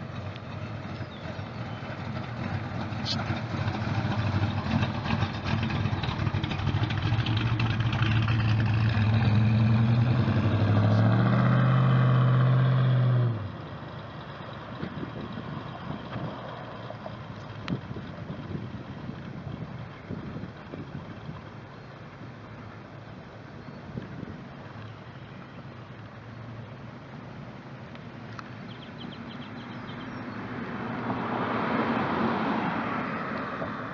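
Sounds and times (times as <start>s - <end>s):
car engine accelerating: 0.0s - 23.0s, 26.0s - 33.9s
distant car running: 0.0s - 33.9s.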